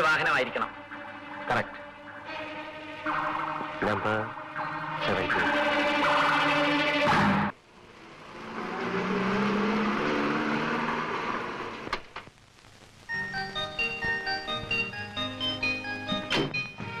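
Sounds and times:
film score chord: 0:00.0 - 0:07.5
car engine driving up: 0:00.0 - 0:12.0
tinkling glockenspiel melody: 0:13.1 - 0:17.0.

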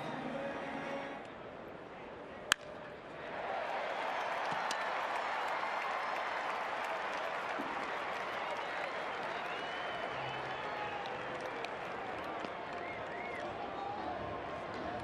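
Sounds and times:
crowd cheering and applauding: 0:03.2 - 0:15.0.

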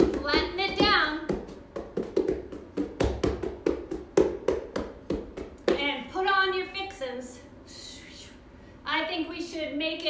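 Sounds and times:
hands patting on a yoga mat: 0:00.0 - 0:05.9.

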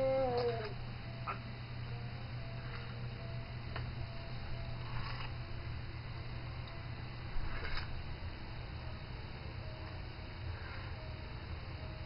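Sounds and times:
infant crying: 0:00.0 - 0:00.8
low steady hum: 0:00.0 - 0:12.0.

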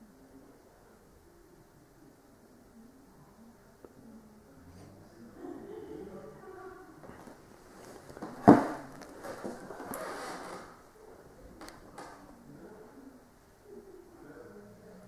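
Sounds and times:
rustling: 0:07.0 - 0:10.8.

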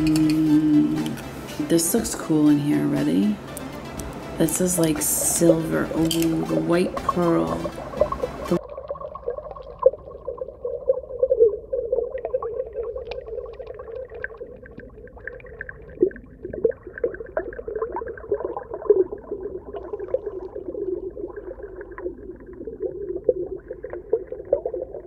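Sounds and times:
dull underwater hum: 0:00.0 - 0:25.0.

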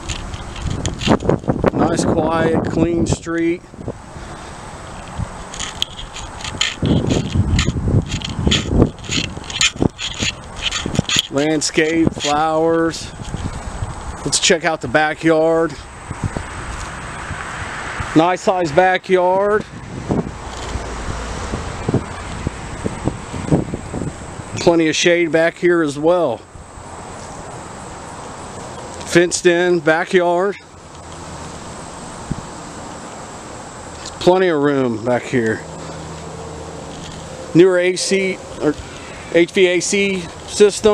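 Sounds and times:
wind buffeting microphone: 0:00.0 - 0:24.8, 0:31.5 - 0:32.6.

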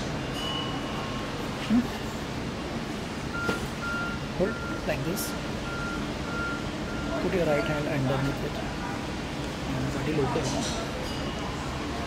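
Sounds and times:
high electronic beeps: 0:03.4 - 0:07.6
voices: 0:03.8 - 0:12.0.

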